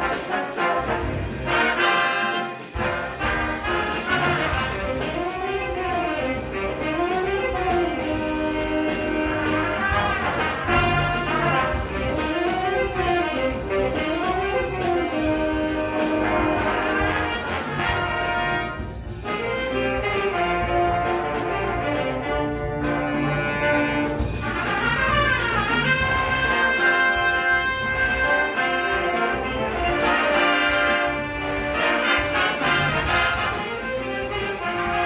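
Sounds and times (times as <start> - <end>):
jazz big band playing: 0.0 - 35.0.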